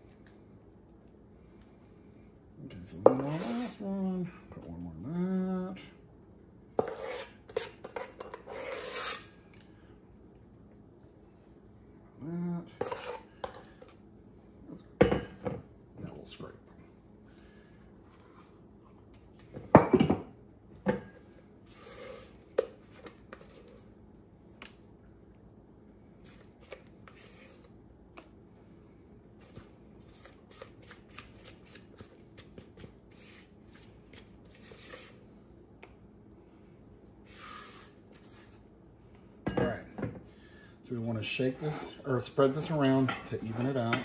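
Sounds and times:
spatula scraping a mixing bowl: 2.9s - 3.9s, 6.8s - 9.4s, 12.8s - 13.7s, 21.6s - 23.9s, 26.3s - 27.7s, 29.4s - 35.2s.

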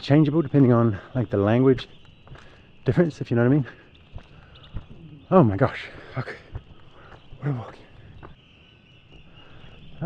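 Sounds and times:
high-pitched animal chorus: 0.0s - 10.0s
soft footsteps: 0.0s - 10.0s.

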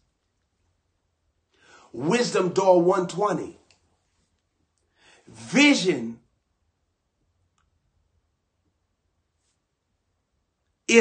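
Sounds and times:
man speaking: 1.8s - 3.7s, 5.3s - 6.3s
faint click: 7.5s - 7.8s.

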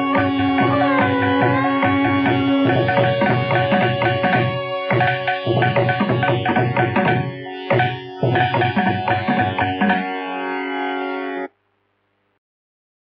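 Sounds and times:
sustained pitched tones: 0.0s - 11.5s.

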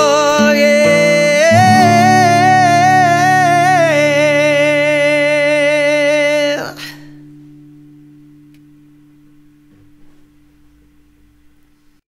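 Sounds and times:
man singing with vibrato: 0.0s - 7.2s
acoustic guitar chord ringing: 0.0s - 11.9s.

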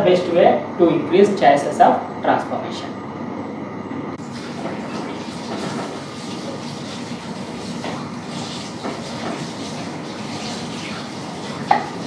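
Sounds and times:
lab equipment running: 0.0s - 12.0s.

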